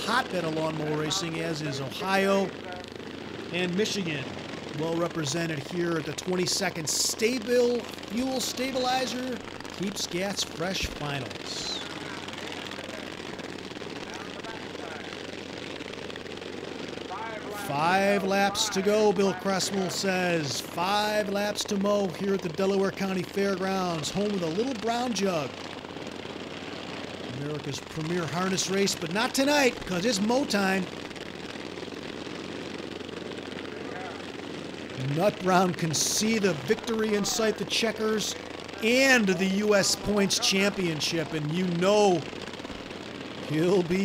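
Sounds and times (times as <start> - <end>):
racing lawn mower engines: 0.0 - 44.0.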